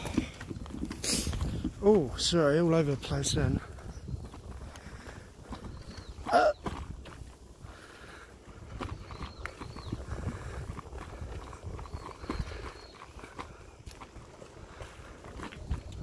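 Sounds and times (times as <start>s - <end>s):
bicycle rattling over paving: 0.0s - 16.0s.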